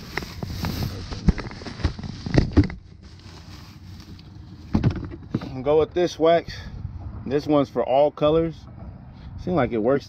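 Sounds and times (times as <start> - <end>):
plastic bag rustling: 0.0 - 4.7.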